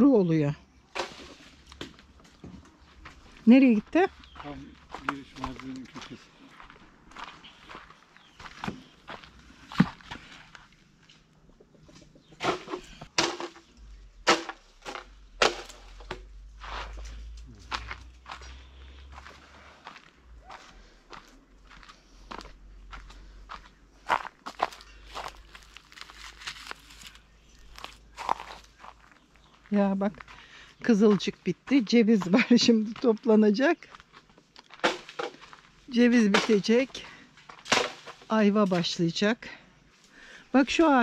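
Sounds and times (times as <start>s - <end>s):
footsteps on twigs and leaves: 0.9s - 39.3s.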